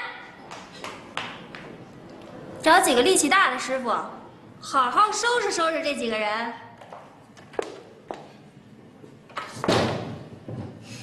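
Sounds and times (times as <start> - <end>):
wooden door slamming: 9.6 - 10.2.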